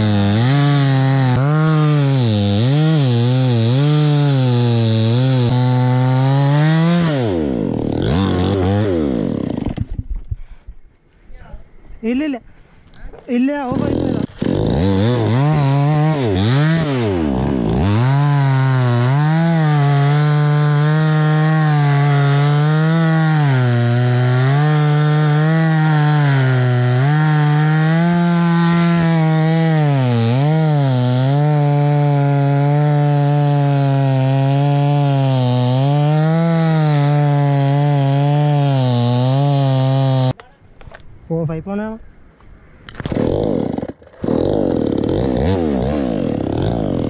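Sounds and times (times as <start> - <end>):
chainsaw revving and sawing wood: 0.0 - 10.1, 13.6 - 40.4, 43.0 - 47.0.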